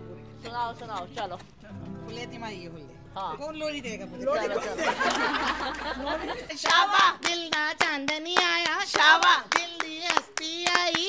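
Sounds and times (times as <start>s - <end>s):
hand claps keeping time: 6.6s - 11.0s.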